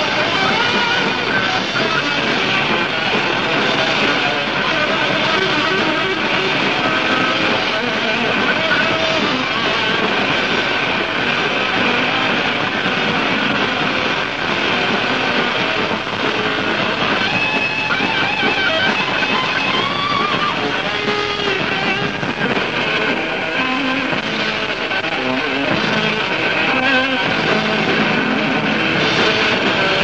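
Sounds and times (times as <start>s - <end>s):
electric guitar lead bending: 0.0s - 30.0s
heavy metal band playing: 0.0s - 30.0s.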